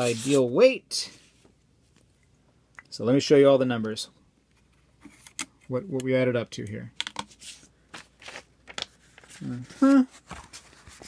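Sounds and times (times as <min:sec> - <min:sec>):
paper rustling: 0:07.3 - 0:11.0.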